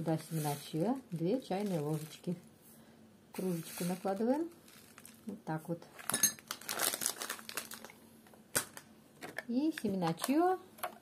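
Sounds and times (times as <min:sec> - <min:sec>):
plastic bag crinkling: 0:00.0 - 0:02.4, 0:03.4 - 0:08.9.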